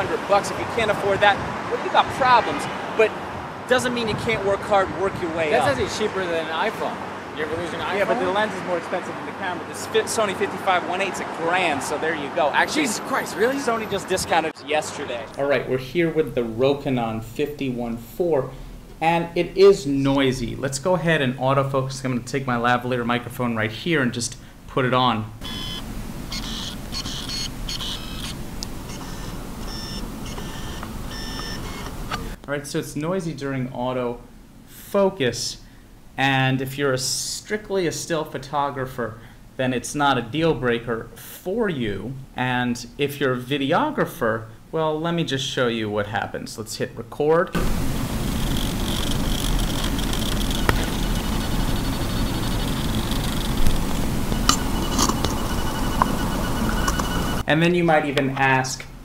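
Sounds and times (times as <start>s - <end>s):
lens autofocus motor buzzing: 25.4s - 32.4s, 48.1s - 57.4s
steady hiss: 47.6s - 54.8s
sharp clicks: 48.4s - 57.4s.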